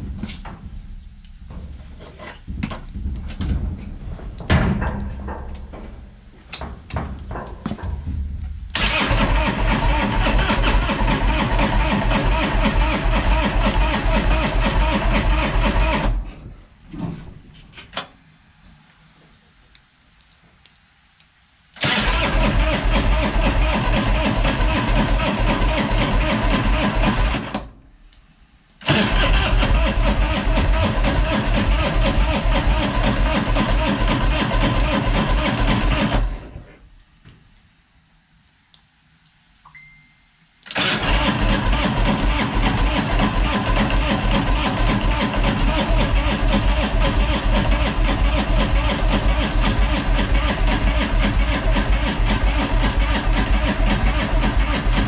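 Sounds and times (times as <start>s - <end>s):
motorcycle electric starter cranking: 8.7s - 16.3s, 21.8s - 27.7s, 28.8s - 36.6s, 40.7s - 55.0s.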